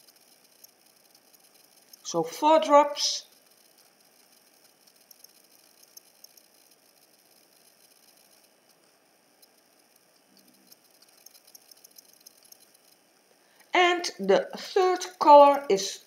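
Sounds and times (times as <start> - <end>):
faint small ticks: 0.0 - 15.7.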